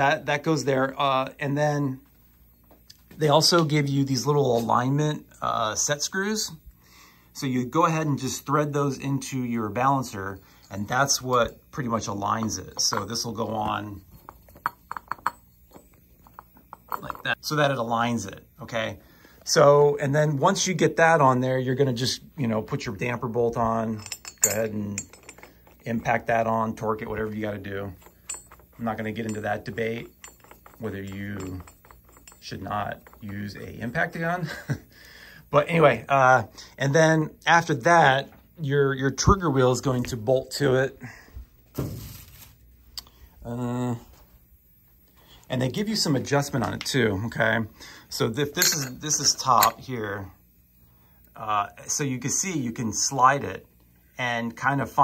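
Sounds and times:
metal hub clinking against metal: 7.5s - 18.8s, 19.4s - 38.5s, 45.0s - 50.3s
metal part clattering: 9.3s - 17.4s, 23.0s - 34.8s, 48.4s - 49.9s.

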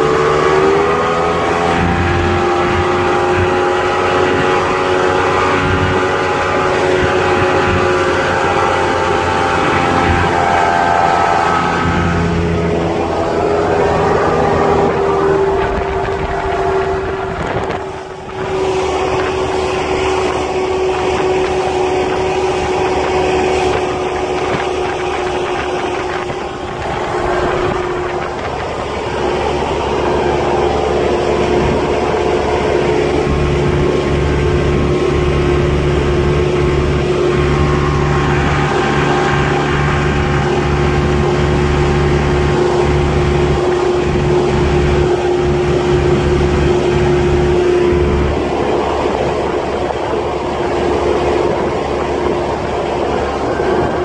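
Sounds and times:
deep rumble: 0.0s - 54.0s
motorboat engine humming: 0.0s - 54.0s
wind and water rushing: 0.0s - 54.0s.

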